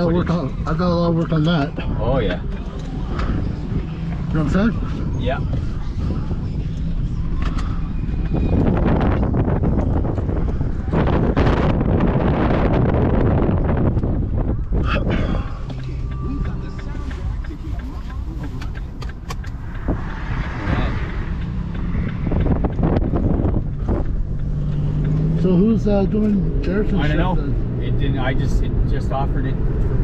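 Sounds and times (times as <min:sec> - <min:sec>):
car engine and road noise: 0:00.0 - 0:30.0.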